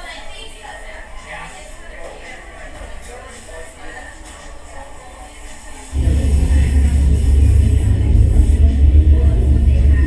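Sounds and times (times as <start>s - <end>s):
coffee shop ambience: 2.0s - 10.0s
heavy low rumble: 5.9s - 10.0s.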